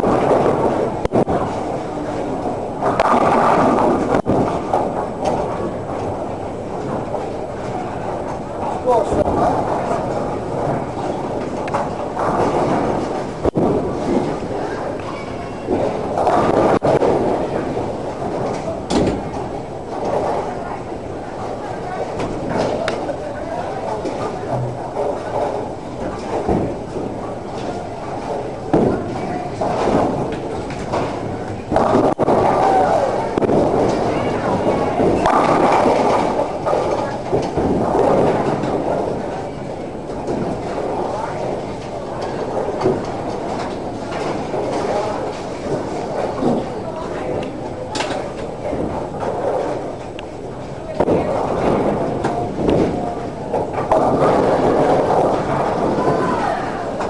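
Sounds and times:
bowling balls rolling: 0:00.0 - 0:57.0
bowling pins crashing: 0:00.0 - 0:57.0
people talking: 0:07.4 - 0:57.0.

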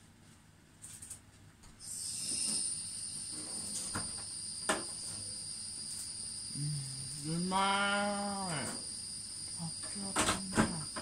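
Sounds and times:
high-pitched two-tone whine: 0:01.8 - 0:11.0.

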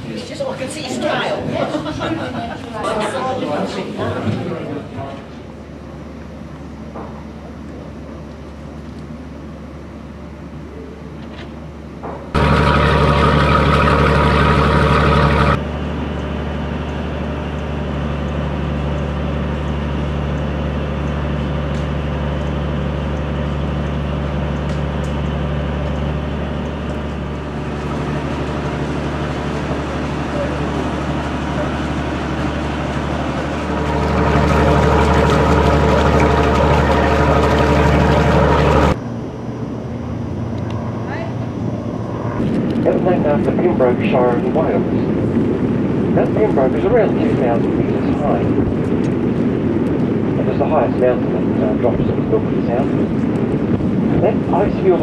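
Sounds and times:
boat engine humming: 0:00.0 - 0:55.0.

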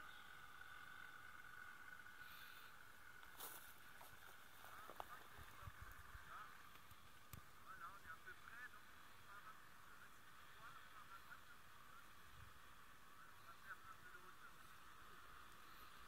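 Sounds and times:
distant birds chirping: 0:00.0 - 0:16.0.

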